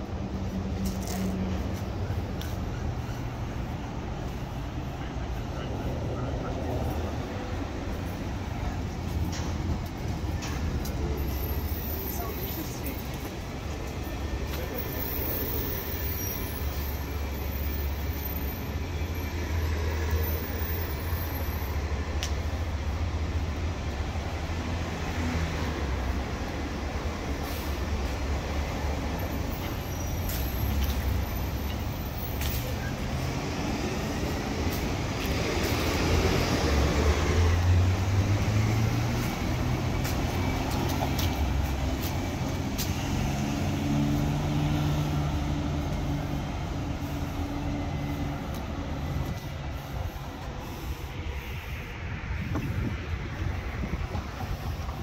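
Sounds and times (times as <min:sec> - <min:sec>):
traffic rumble: 0:00.0 - 0:55.0.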